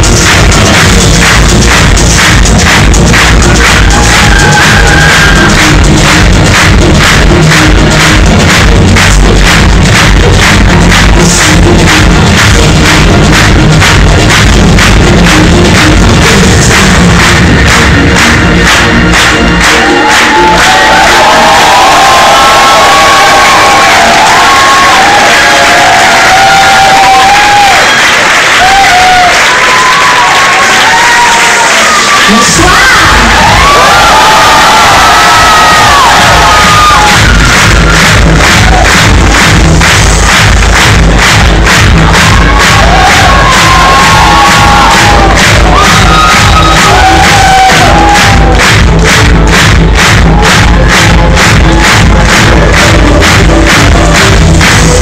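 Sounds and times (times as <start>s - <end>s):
crowd screaming and cheering: 0.0s - 55.0s
electronic dance beat: 0.0s - 55.0s.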